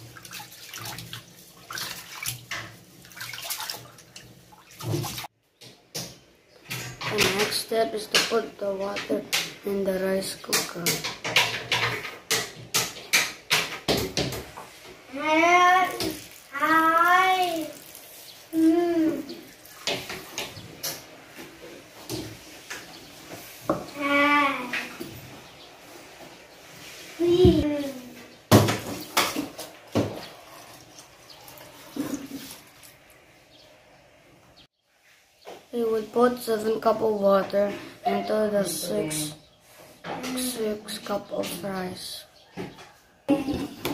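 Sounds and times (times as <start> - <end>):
water splashing into pot of rice: 0.0 - 5.3.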